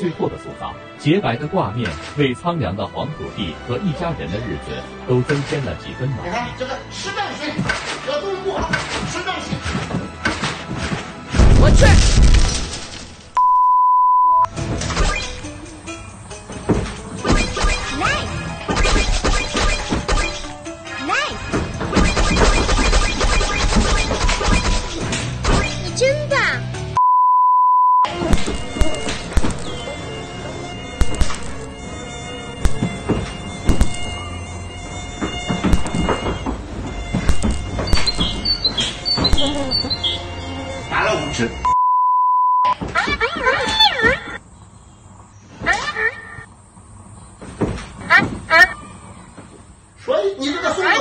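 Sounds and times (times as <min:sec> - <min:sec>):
music: 0:00.0 - 0:13.1, 0:14.5 - 0:27.0, 0:28.1 - 0:41.8
censor bleep tone: 0:13.4 - 0:14.5, 0:27.0 - 0:28.1, 0:41.6 - 0:42.8
electric swatter cracks: 0:18.6 - 0:20.6, 0:22.0 - 0:25.9, 0:28.2 - 0:29.7, 0:31.0 - 0:31.6, 0:33.7 - 0:34.0.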